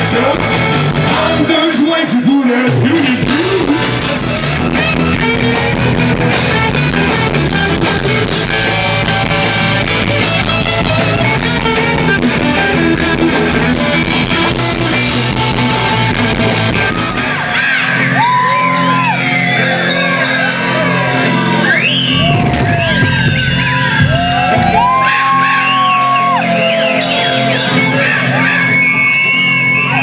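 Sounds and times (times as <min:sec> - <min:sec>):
live rock band playing: 0:00.0 - 0:30.0
people shouting and whooping: 0:15.0 - 0:30.0.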